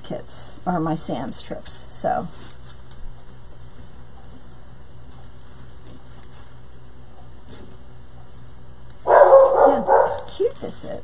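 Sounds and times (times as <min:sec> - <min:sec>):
steady low hum: 0:00.0 - 0:11.0
faint soft rustles: 0:02.0 - 0:08.0.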